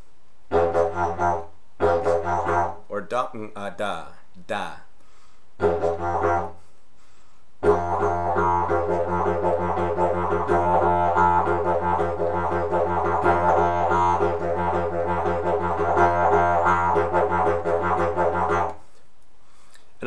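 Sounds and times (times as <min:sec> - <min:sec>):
didgeridoo rhythmic pulses: 0:00.5 - 0:02.8, 0:05.6 - 0:06.6, 0:07.6 - 0:18.8
didgeridoo drone: 0:07.6 - 0:18.7.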